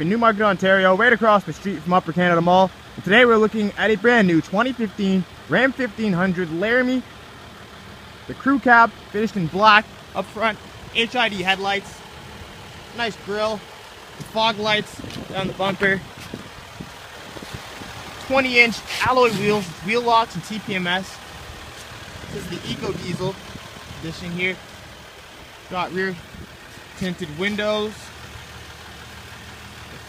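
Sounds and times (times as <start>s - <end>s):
low engine rumble: 0.0s - 30.0s.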